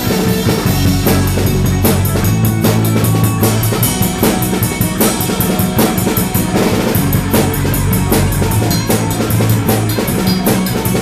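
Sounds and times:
drum kit beat: 0:00.0 - 0:11.0
electric guitar: 0:00.0 - 0:11.0
low bass notes: 0:00.0 - 0:11.0.

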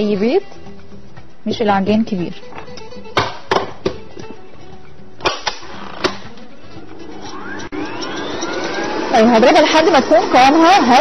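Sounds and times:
hand mixer motor whine: 0:05.6 - 0:11.0.

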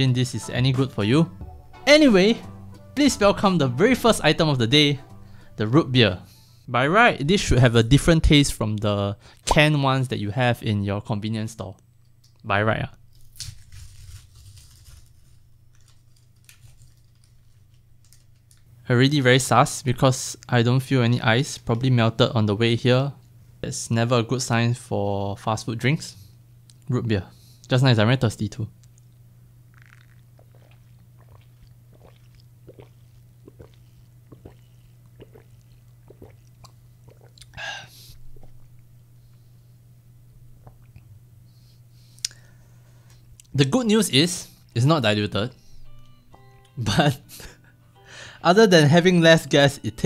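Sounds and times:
low steady hum: 0:00.0 - 0:50.0
person gulping a drink: 0:29.7 - 0:37.6, 0:38.2 - 0:38.8, 0:40.6 - 0:41.1
swallowing and mouth clicks: 0:29.7 - 0:37.6, 0:40.6 - 0:41.1.

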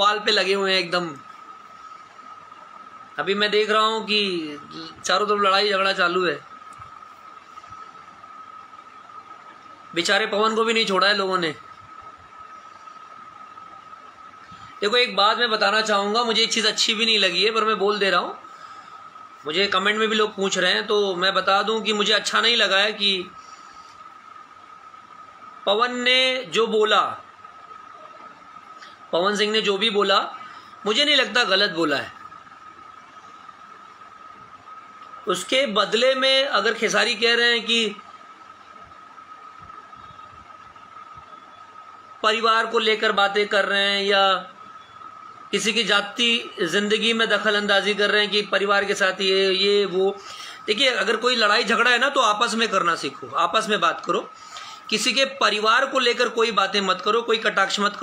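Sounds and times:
steady hiss: 0:00.0 - 0:58.0.

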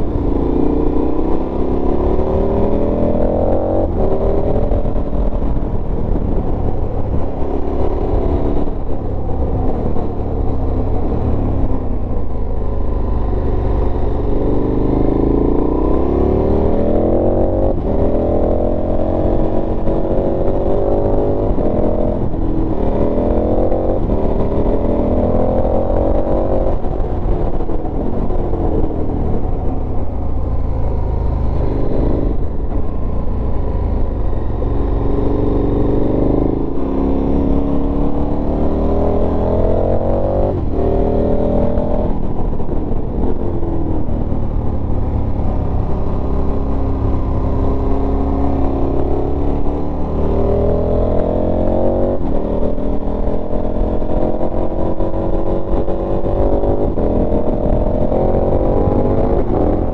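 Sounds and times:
low wind rumble: 0:00.0 - 0:59.9
motorcycle engine shifting gears: 0:00.0 - 0:59.9.

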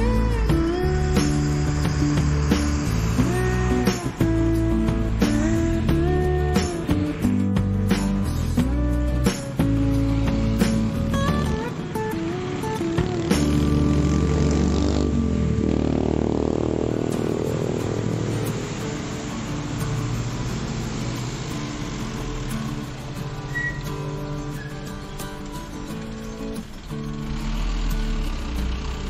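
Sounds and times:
background music: 0:00.0 - 0:29.0
bus engine running: 0:00.0 - 0:29.0
road traffic noise: 0:00.0 - 0:29.0
motorcycle passing: 0:09.6 - 0:29.0.

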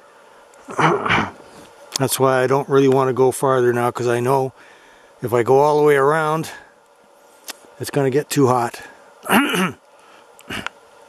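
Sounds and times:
brief cough: 0:00.7 - 0:01.4, 0:09.3 - 0:09.8
man clearing his throat: 0:00.7 - 0:01.4, 0:09.3 - 0:09.8, 0:10.5 - 0:10.7.

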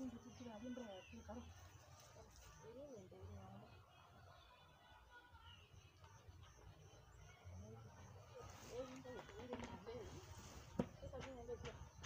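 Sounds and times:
faint distant talking voices: 0:00.0 - 0:12.0.

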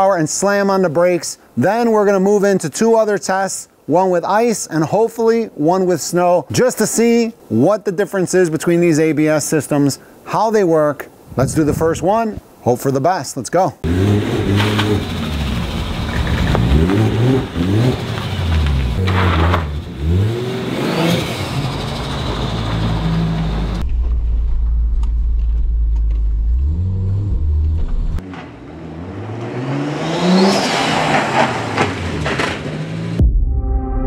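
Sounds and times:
car engine revving: 0:13.8 - 0:23.8, 0:25.4 - 0:33.2.

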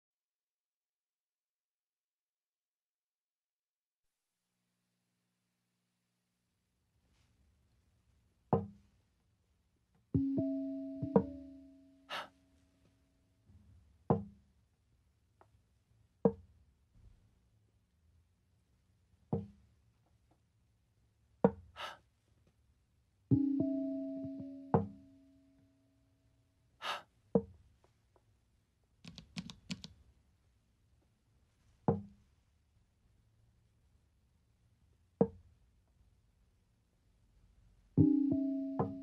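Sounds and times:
breathy gasp: 0:12.1 - 0:12.4, 0:21.8 - 0:22.0, 0:26.8 - 0:27.1
small clicks: 0:29.0 - 0:30.0.

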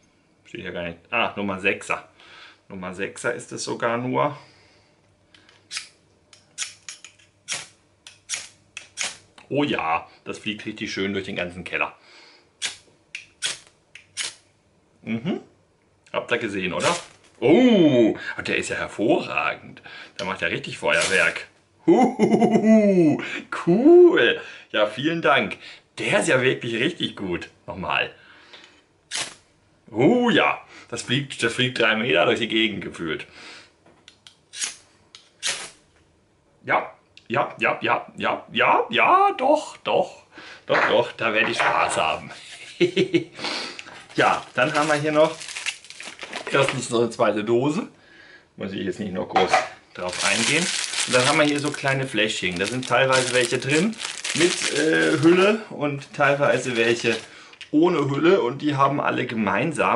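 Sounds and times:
knife scraping fire steel: 0:34.5 - 0:34.8.

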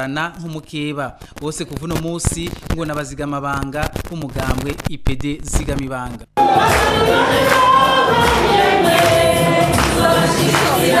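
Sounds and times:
choir singing: 0:06.4 - 0:11.0.

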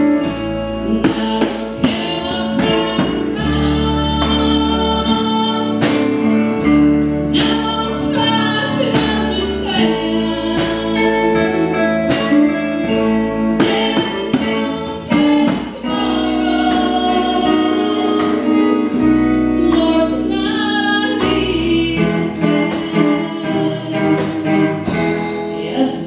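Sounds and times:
drum kit beat: 0:00.0 - 0:26.0
electric guitars: 0:00.0 - 0:26.0
woman singing lead: 0:00.0 - 0:26.0.

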